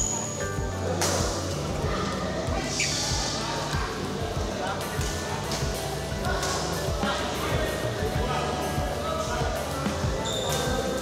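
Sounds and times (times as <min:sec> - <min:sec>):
voices in hall: 0:00.0 - 0:11.0.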